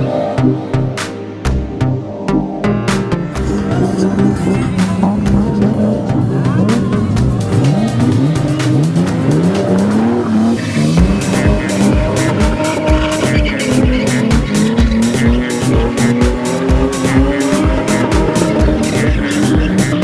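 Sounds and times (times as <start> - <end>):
car engines revving: 2.9 - 20.0
tyres squealing: 3.6 - 20.0
music with steady drum beat: 10.9 - 20.0.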